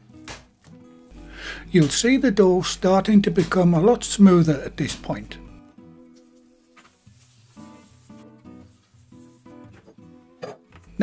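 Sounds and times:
plucked guitar music: 0.0 - 11.0.

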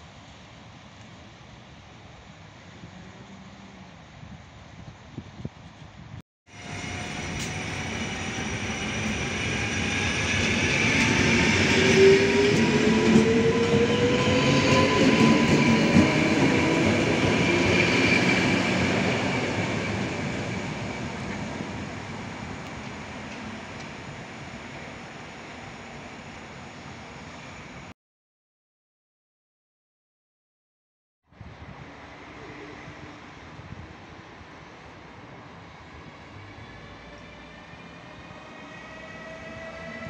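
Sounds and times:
train wheels rumbling on rails: 5.3 - 24.8.

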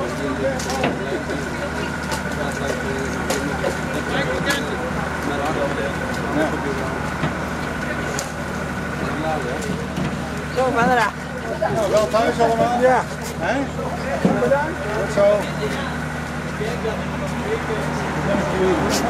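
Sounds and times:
chatter of voices: 0.0 - 19.0
engine idling with whine: 0.0 - 19.0.

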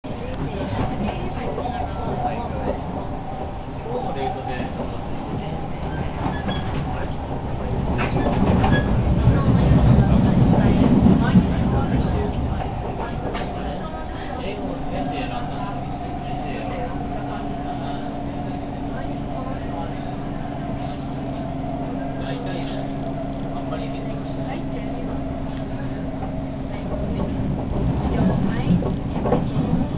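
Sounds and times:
train running rumble: 0.1 - 29.9.

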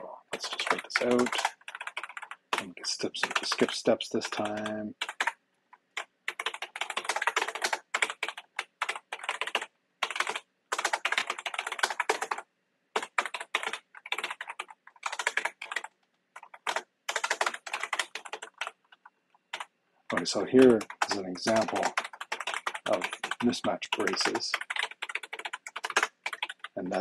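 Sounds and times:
typing on computer keyboard: 0.3 - 27.0.

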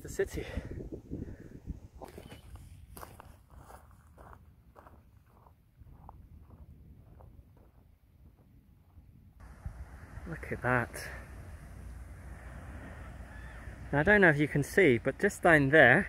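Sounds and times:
footsteps on grass and stones: 2.0 - 7.8.

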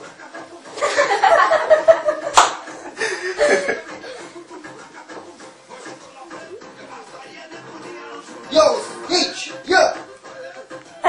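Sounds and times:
person chuckling: 0.8 - 4.6.

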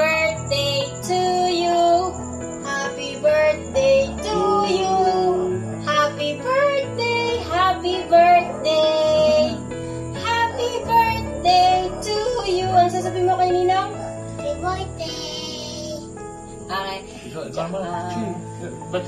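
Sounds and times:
song with high child-like voice: 0.0 - 13.7, 14.3 - 16.2.

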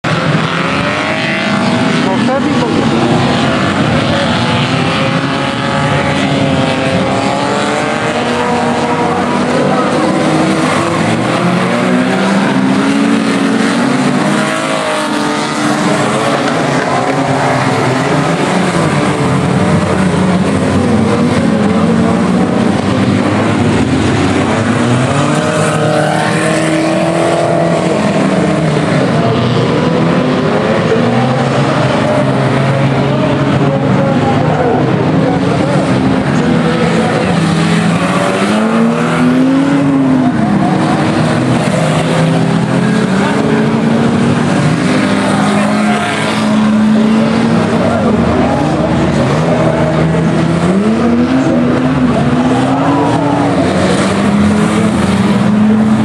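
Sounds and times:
racing car engines revving: 0.0 - 56.0.

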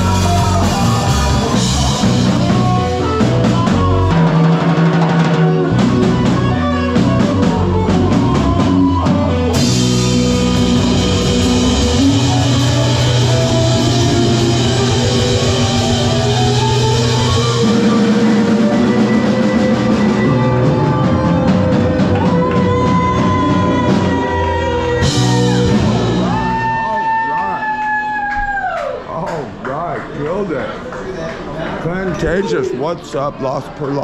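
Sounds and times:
live rock band playing: 0.0 - 27.8.

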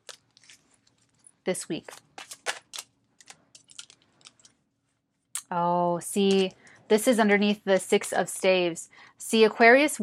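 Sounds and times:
cards being shuffled: 0.0 - 4.6.

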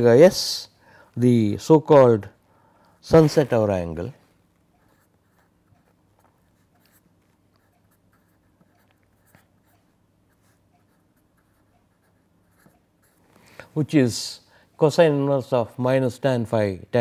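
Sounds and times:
pen scratching on paper: 4.8 - 13.2.

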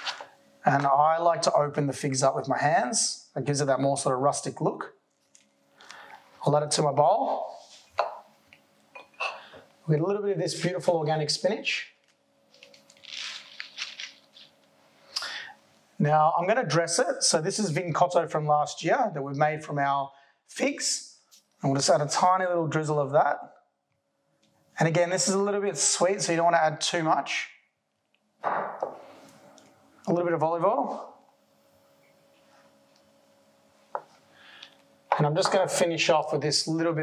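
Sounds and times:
crisp leaf crackles: 12.5 - 14.6
leaves rustling in a bowl: 12.5 - 14.7
glass bottle knocking on stone: 28.4 - 29.0.

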